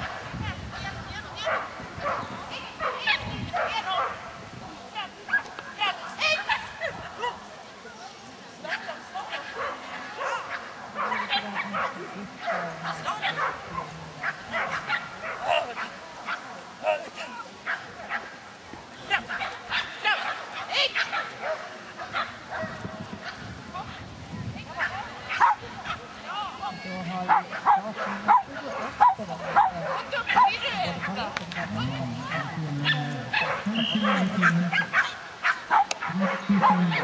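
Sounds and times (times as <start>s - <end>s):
dog barking: 1.4s - 4.2s, 9.4s - 16.4s, 19.3s - 23.4s, 24.8s - 26.0s, 27.3s - 37.0s.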